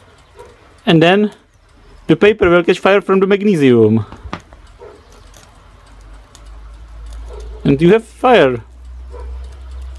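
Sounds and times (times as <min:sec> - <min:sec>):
faint ticks: 0:00.0 - 0:09.9
paper burning in metal dish: 0:00.0 - 0:09.9.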